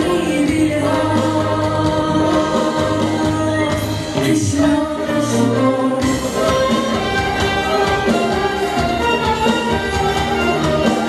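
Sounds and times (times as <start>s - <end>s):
electronic keyboard accompaniment: 0.0s - 11.0s
woman singing into a microphone: 0.0s - 11.0s.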